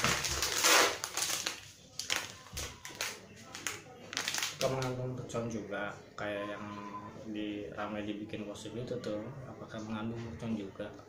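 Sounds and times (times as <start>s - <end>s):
plastic packet rustling: 0.0s - 5.0s.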